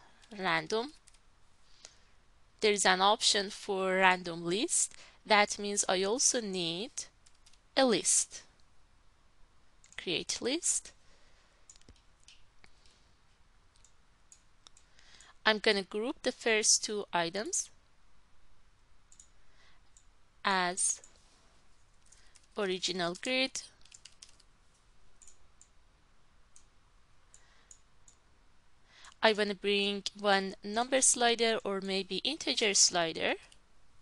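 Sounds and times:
faint computer mouse clicks: 11.7 - 13.0.

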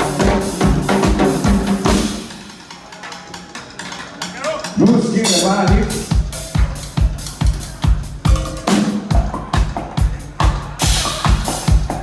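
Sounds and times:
live band music: 0.0 - 12.0.

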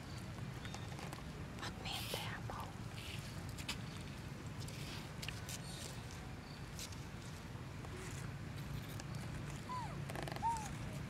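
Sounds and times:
infant monkey high-pitched calls: 9.7 - 11.0.

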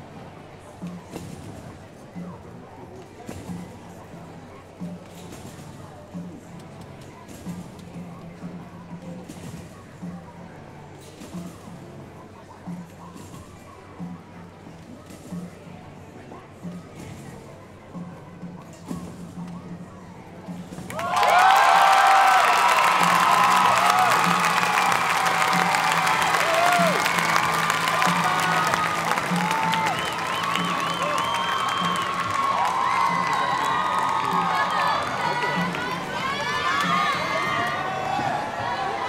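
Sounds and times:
crowd cheering and whooping: 20.9 - 39.0.

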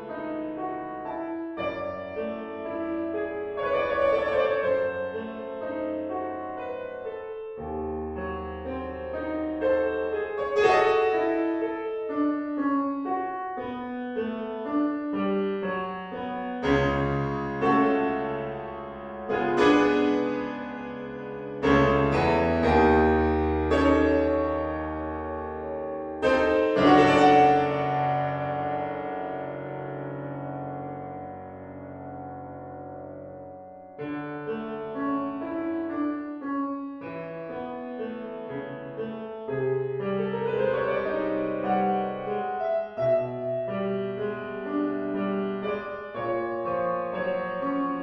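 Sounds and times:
loud piano chord: 0.0 - 48.0
solo piano piece: 0.0 - 48.0
loud piano chord ringing: 16.6 - 34.1.

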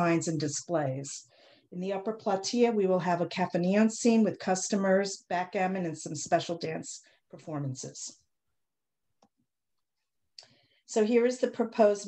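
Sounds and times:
woman speaking: 0.0 - 8.2, 10.9 - 12.0.

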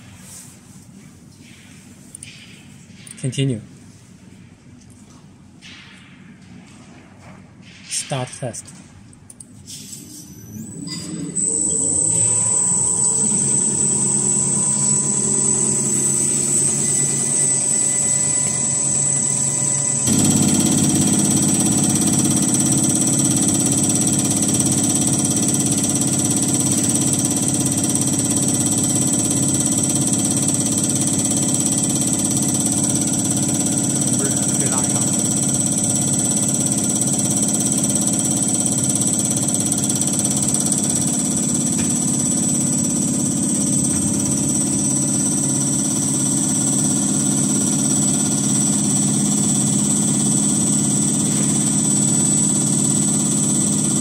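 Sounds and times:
deeper hum: 10.5 - 23.8
electric motor high whine: 10.5 - 54.0.

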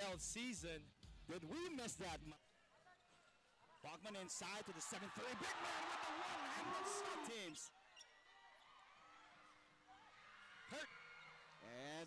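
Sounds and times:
arena crowd noise: 2.4 - 12.0.

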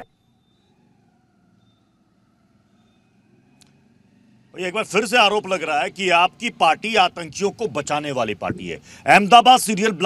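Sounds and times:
man speaking: 4.6 - 10.0.

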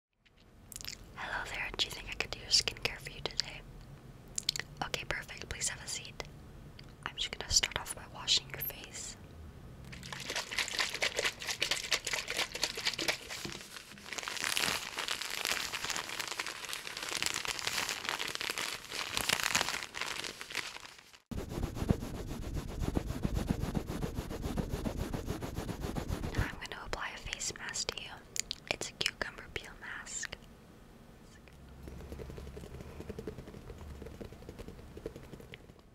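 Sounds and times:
woman whispering: 1.2 - 3.6, 4.7 - 6.3, 7.0 - 9.2, 26.3 - 30.4
mouth clicks: 4.3 - 4.7
rhythmic rubbing: 21.3 - 26.6.

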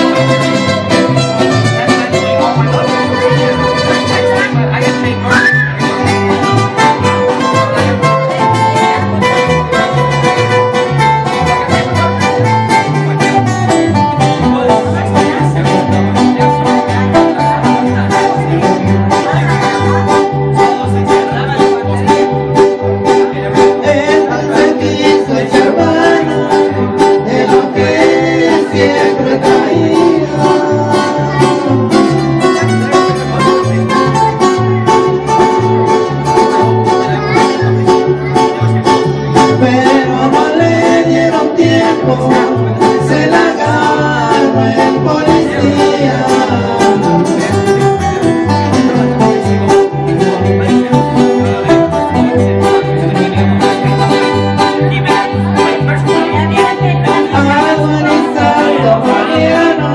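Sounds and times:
man singing: 0.0 - 36.1, 38.3 - 59.9
bouncing bass line: 0.0 - 59.9
strummed acoustic guitars: 0.0 - 59.9.

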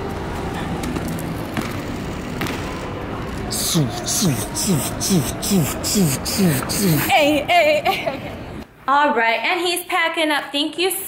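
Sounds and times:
city background noise: 0.0 - 11.0.

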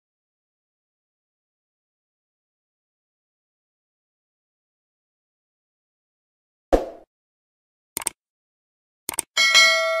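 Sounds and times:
mouse double-click: 8.0 - 8.2, 9.1 - 9.3
bright bell ding: 9.4 - 10.0.

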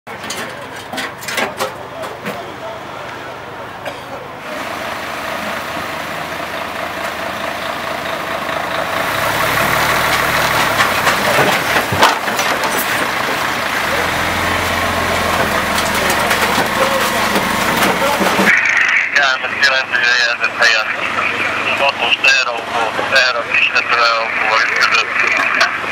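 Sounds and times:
clicks and knocks: 0.1 - 2.4, 9.9 - 13.6
engine running: 0.1 - 25.9
indistinct voices: 0.1 - 25.9.

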